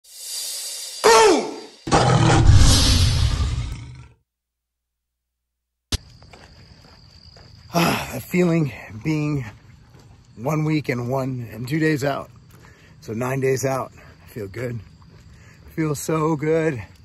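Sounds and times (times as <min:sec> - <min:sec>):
rising whoosh: 0:00.1 - 0:03.9
tiger roaring: 0:01.1 - 0:04.1.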